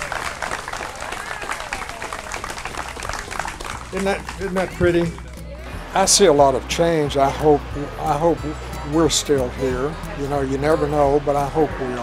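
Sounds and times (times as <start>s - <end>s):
audience applauding: 0.0s - 5.3s.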